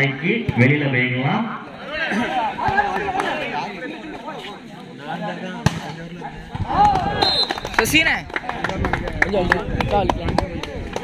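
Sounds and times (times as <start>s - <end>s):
low voices: 1.4s - 11.0s.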